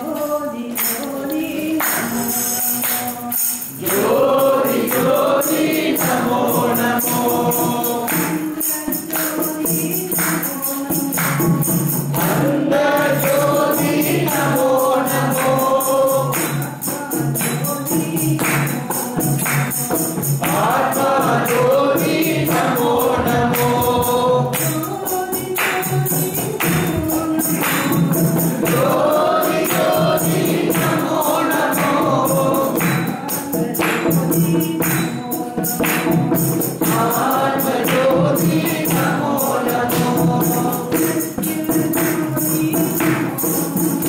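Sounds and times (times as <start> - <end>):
group singing devotional song: 0.0 - 44.0
jingling hand percussion: 0.0 - 44.0.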